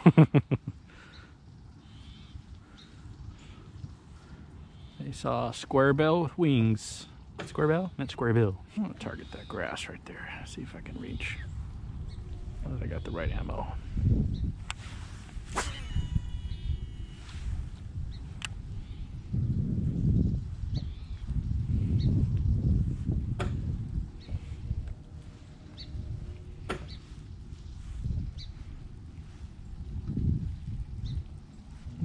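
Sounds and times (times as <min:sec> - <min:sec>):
low rumbling noise: 0:08.6 - 0:32.0
fishing reel whine: 0:15.5 - 0:17.7.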